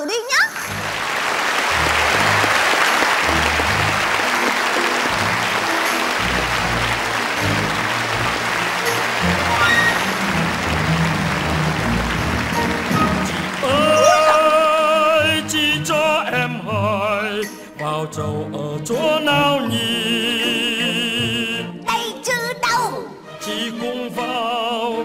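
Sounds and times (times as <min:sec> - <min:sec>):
instrumental stage music: 0:00.0 - 0:18.0
audience applause: 0:00.5 - 0:15.4.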